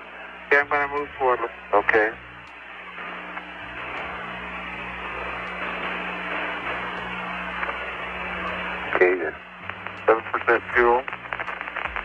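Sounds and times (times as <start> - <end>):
low hum: 0.0 - 12.0
radio static hiss: 0.0 - 12.0.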